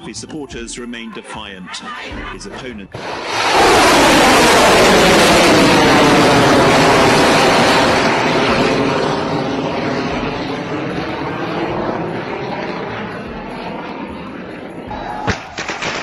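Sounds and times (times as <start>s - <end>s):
aircraft flying past: 2.9s - 16.0s.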